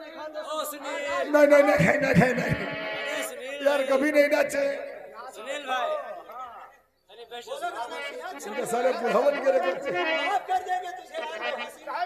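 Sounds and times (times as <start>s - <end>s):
people talking over one another: 0.0s - 12.0s.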